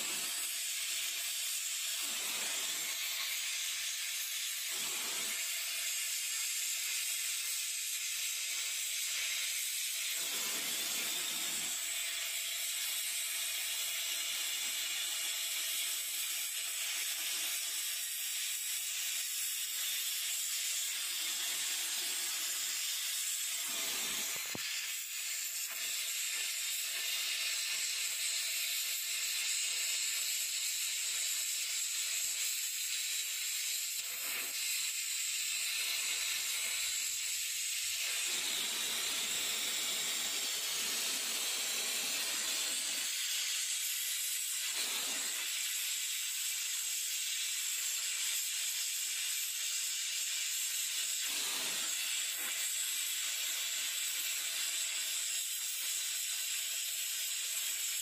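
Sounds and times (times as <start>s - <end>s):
gas torch flame hissing: 0.0s - 58.0s.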